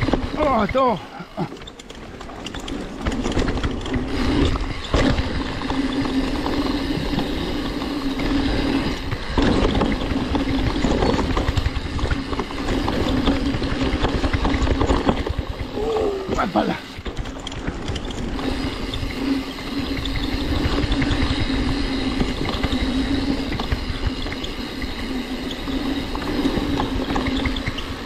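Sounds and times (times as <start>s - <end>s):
bike freehub buzzing: 0.0s - 28.0s
bike knocking and rattling: 0.0s - 28.0s.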